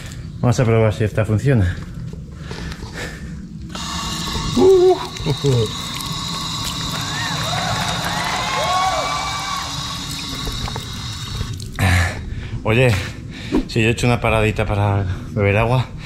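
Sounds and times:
person drinking: 0:03.8 - 0:08.3, 0:09.1 - 0:12.3.

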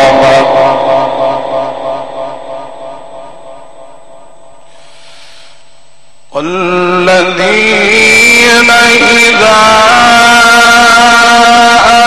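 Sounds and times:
man reciting through a pa: 0:00.0 - 0:02.1, 0:06.3 - 0:12.0.

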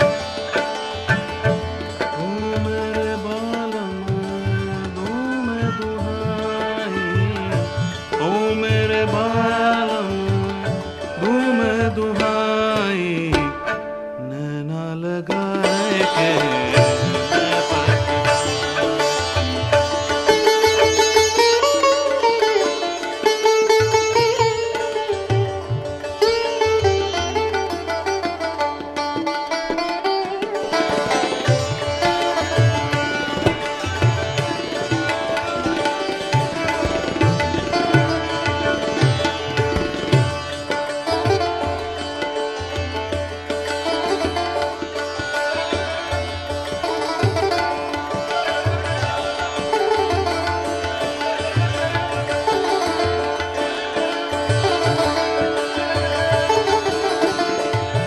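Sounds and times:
sitar melody: 0:00.0 - 0:58.0.

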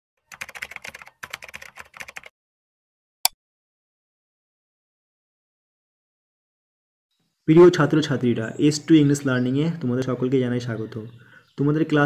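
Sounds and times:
computer keyboard typing: 0:00.3 - 0:02.3.

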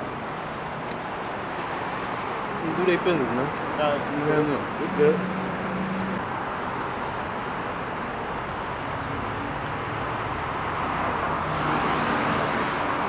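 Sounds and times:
passing cars rushing: 0:01.4 - 0:13.0.

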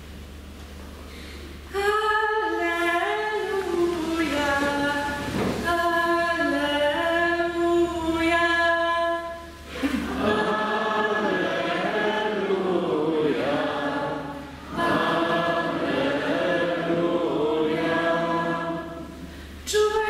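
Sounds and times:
group of voices singing: 0:09.7 - 0:19.3.

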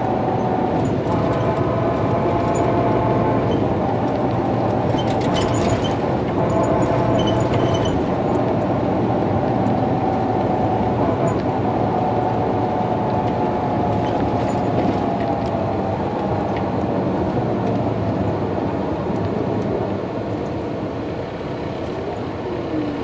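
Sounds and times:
coach engine running: 0:00.0 - 0:23.0
road and tyre noise: 0:00.0 - 0:23.0.

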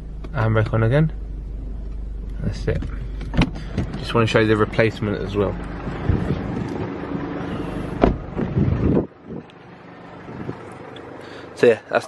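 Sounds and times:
camera handling rustling and rumble: 0:02.7 - 0:04.1, 0:05.6 - 0:06.9.

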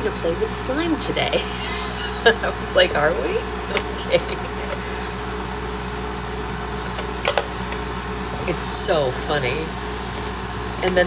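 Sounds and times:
mechanical room hum: 0:00.0 - 0:11.0.

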